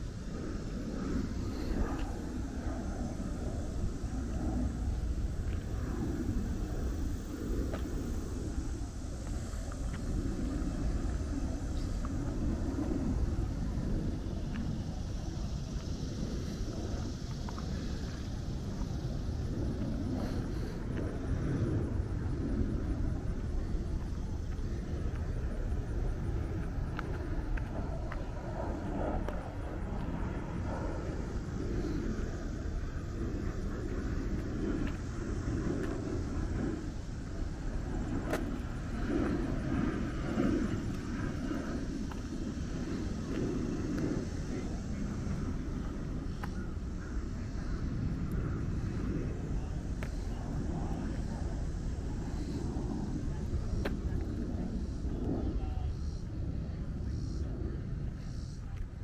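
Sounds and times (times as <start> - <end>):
steady low rumble: 0.0 - 59.0.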